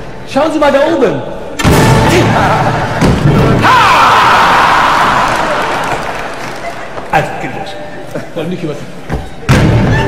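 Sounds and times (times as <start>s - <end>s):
audience cheering and shouting: 1.9s - 6.9s.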